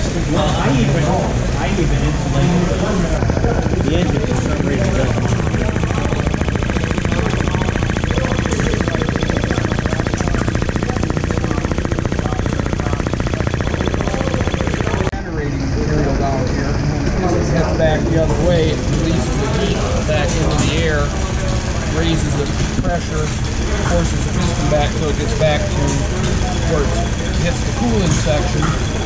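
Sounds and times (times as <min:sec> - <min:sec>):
small engine running fast: 0:00.0 - 0:29.0.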